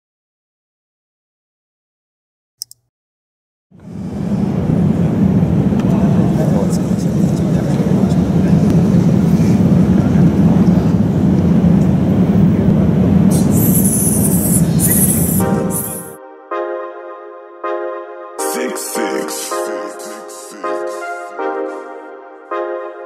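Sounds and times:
low rumbling room noise: 3.8 - 16.2
indistinct voices: 4.6 - 16.2, 18.4 - 21.4.

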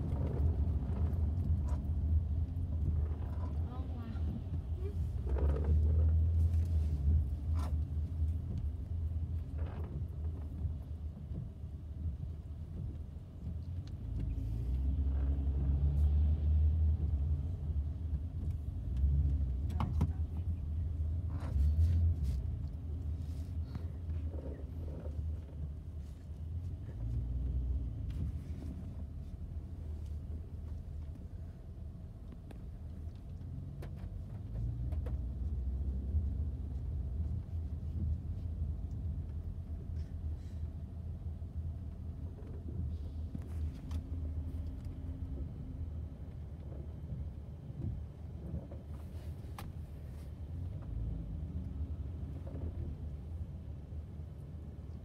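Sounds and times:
car engine and tyre rumble: 0.0 - 55.0.

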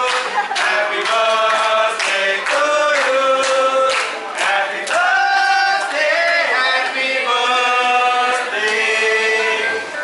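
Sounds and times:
group singing birthday song: 0.0 - 10.0.

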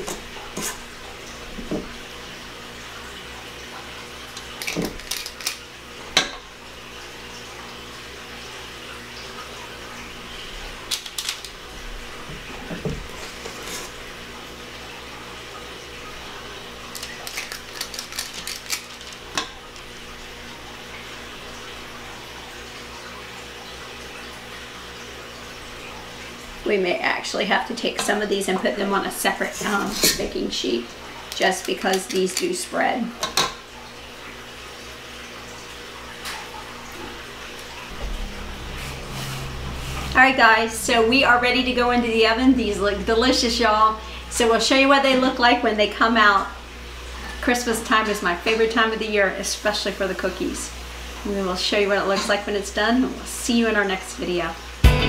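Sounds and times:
utensil scraping metal bowl: 0.0 - 0.9
low background hum: 0.0 - 55.0.

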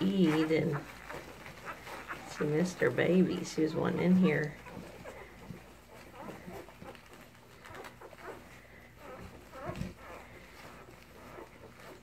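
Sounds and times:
puppies squeaking and grunting: 0.0 - 12.0.

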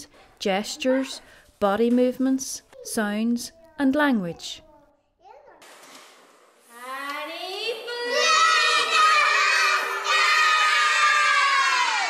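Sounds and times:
children singing: 8.0 - 12.0.

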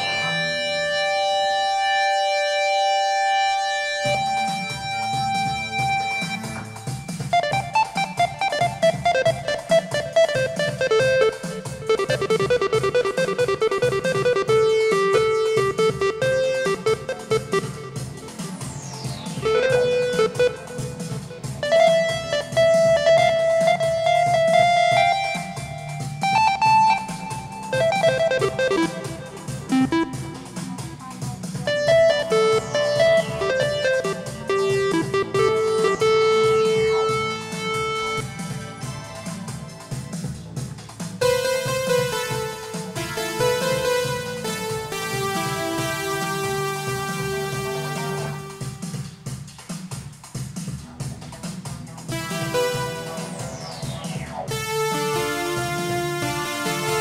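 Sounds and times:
synthesizer playing: 0.0 - 49.2, 52.1 - 57.0.

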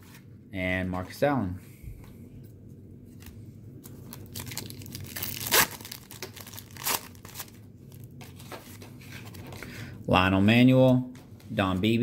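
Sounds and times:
wax paper wrapper crinkling: 3.1 - 9.5
sharp paper rips: 4.4 - 7.5.

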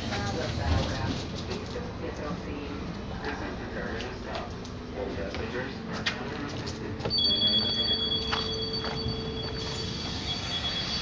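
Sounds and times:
high two-tone warning beeping: 7.1 - 11.0.

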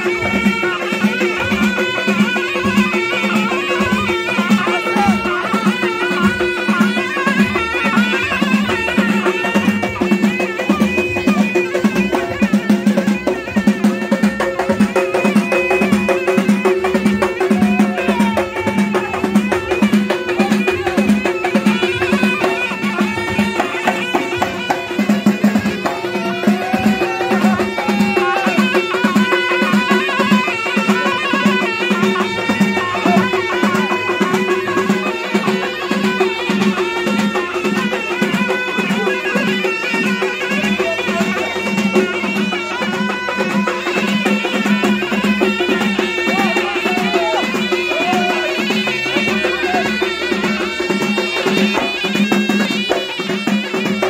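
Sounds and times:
frame drums steady beat: 0.0 - 54.0.

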